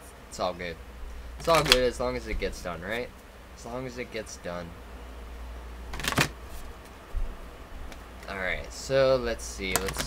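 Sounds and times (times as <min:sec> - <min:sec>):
cards riffle shuffling: 0:01.4 - 0:02.0, 0:05.9 - 0:07.0, 0:09.6 - 0:10.0
handling card deck: 0:01.4 - 0:02.0, 0:05.9 - 0:07.0, 0:09.6 - 0:10.0.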